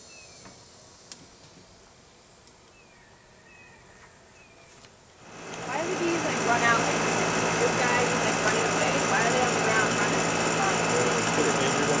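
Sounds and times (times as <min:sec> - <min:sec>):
machine motor humming: 0:05.2 - 0:12.0.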